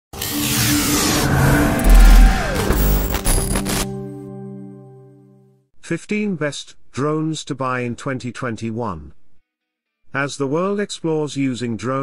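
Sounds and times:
falling sweep: 0:00.7 - 0:03.9
whoosh: 0:00.8 - 0:03.9.

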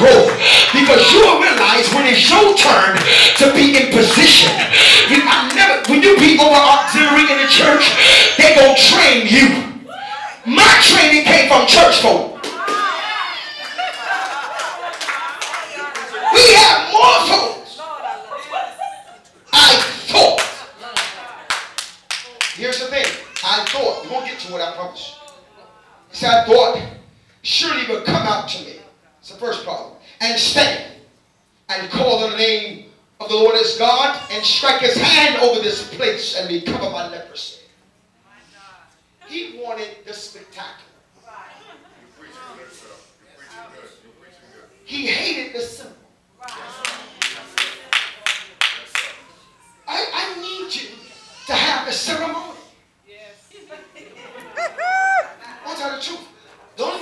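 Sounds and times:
voices calling out: 0:00.0 - 0:11.2
sharp hand claps: 0:19.8 - 0:23.8, 0:46.4 - 0:49.2.

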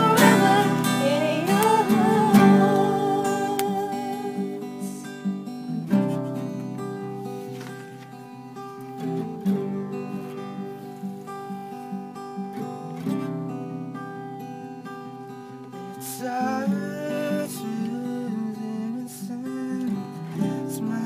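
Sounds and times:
person singing: 0:00.0 - 0:06.2, 0:16.0 - 0:21.0
acoustic guitar strumming: 0:00.0 - 0:21.0.

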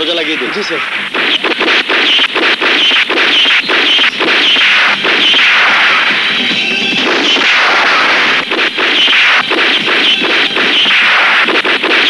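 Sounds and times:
gunshots: 0:00.0 - 0:12.0
loud dense backdrop: 0:00.0 - 0:12.0.

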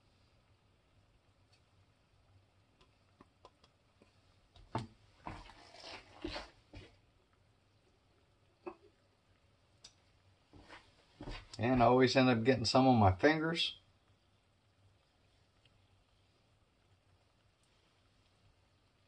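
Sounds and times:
utensils scraping in pan: 0:05.4 - 0:06.6.

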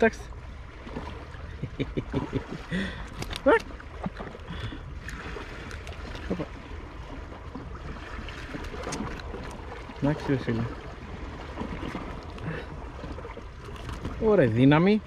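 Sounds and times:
low water wash: 0:00.0 - 0:15.0
small waves lapping against rocks: 0:00.0 - 0:15.0.

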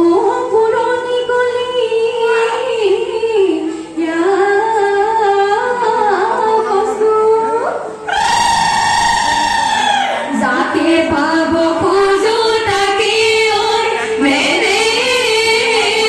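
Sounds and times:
woman singing into a microphone: 0:00.0 - 0:08.1, 0:10.1 - 0:16.0.

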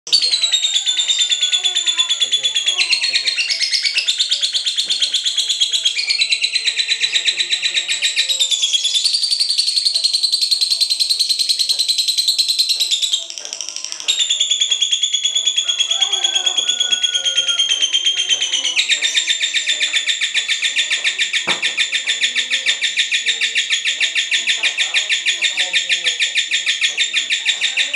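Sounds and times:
lovebird chattering trill: 0:00.1 - 0:27.9.

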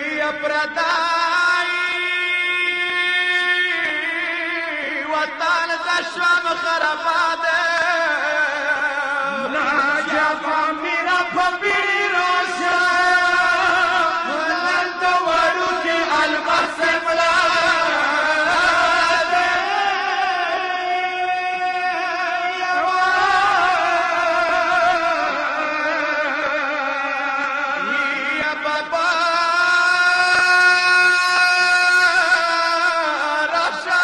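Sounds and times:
men chanting a lament: 0:00.0 - 0:34.0.

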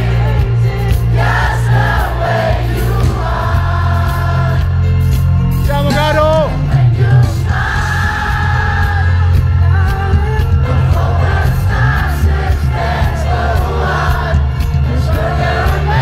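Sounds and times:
heavy bass line: 0:00.0 - 0:16.0
live pop band playing: 0:00.0 - 0:16.0.

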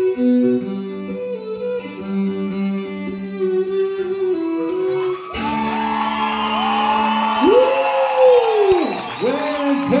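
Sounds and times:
audience whooping and cheering: 0:04.9 - 0:10.0.

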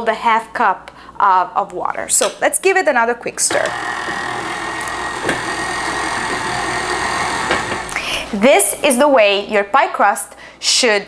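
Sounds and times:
stand mixer motor whining: 0:03.5 - 0:08.0.

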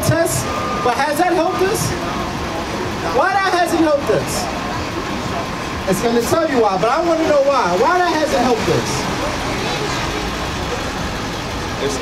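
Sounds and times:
bus engine running: 0:00.0 - 0:12.0
street traffic rumble: 0:00.0 - 0:12.0.

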